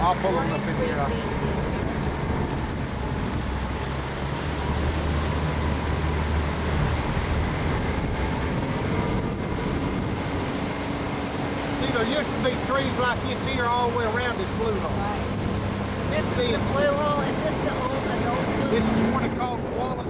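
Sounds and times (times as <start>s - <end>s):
boat motor running: 0.0s - 20.0s
water noise: 0.0s - 20.0s
wind noise: 0.6s - 20.0s.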